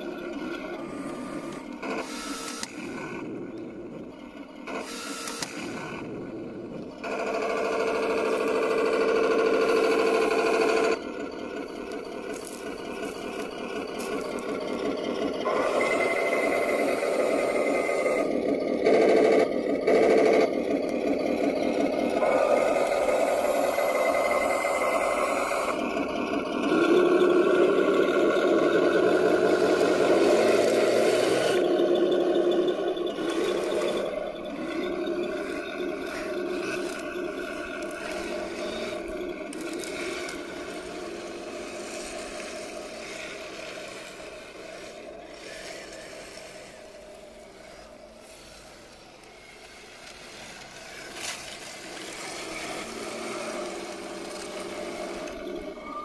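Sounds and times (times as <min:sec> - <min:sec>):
simulated engine noise: 0:00.0 - 0:56.0
toy tank tracks running: 0:00.0 - 0:56.0.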